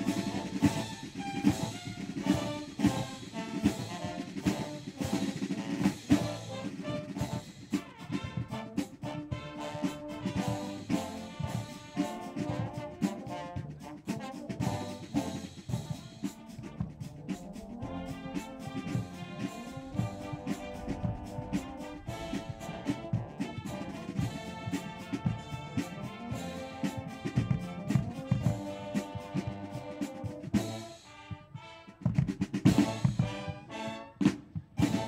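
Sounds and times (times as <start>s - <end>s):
bass drums: 0.0s - 30.8s, 32.1s - 35.0s
brass playing: 0.0s - 35.0s
marching snare drums: 0.0s - 35.0s.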